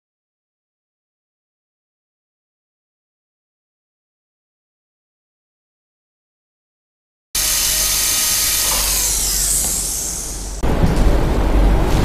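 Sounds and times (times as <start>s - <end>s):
dental drill whine: 7.4s - 10.6s.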